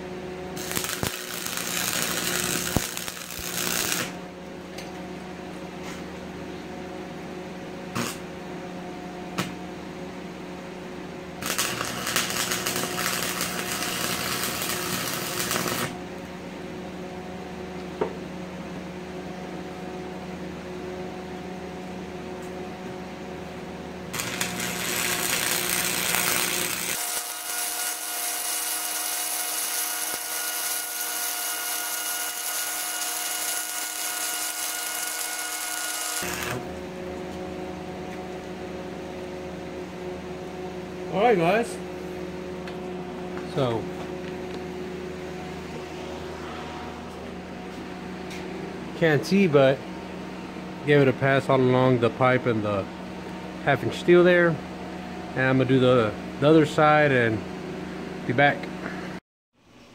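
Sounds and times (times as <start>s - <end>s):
steady hum: 0.0s - 59.9s
welding arc crackling: 0.6s - 4.2s, 7.9s - 8.2s, 11.4s - 16.0s, 24.1s - 36.7s.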